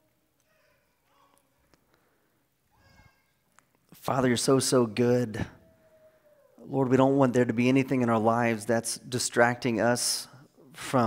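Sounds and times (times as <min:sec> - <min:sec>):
faint high-pitched vocal sounds: 0:00.0 - 0:01.8, 0:02.6 - 0:03.6, 0:05.4 - 0:06.7.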